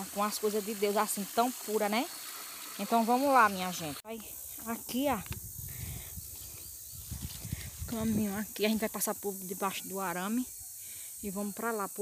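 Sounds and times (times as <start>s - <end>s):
footsteps on grass and straw: 4.4s - 8.9s.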